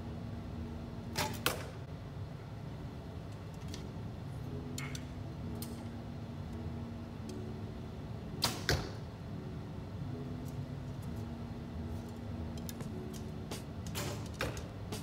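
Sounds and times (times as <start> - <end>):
arrow striking target: 1.1 - 1.7, 8.4 - 9.0, 13.9 - 15.0.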